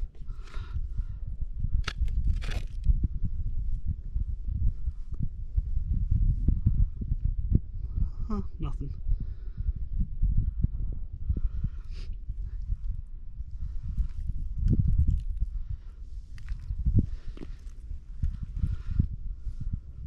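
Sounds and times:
wind rumbling on microphone: 0.0 - 20.0
slush and ice crunching: 1.8 - 2.8.

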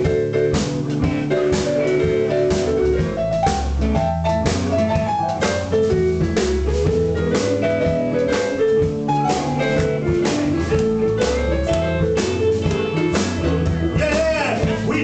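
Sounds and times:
bass line: 0.0 - 15.0
drum kit: 0.0 - 15.0
electric guitar: 0.0 - 15.0.

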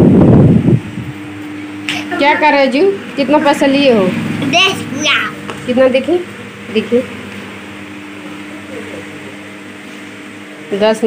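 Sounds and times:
wind rumbling on microphone: 0.0 - 1.4.

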